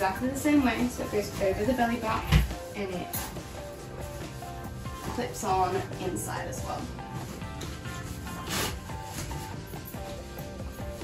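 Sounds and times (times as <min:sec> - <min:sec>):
background music held notes: 0:00.0 - 0:11.0
fabric rustle: 0:00.0 - 0:11.0.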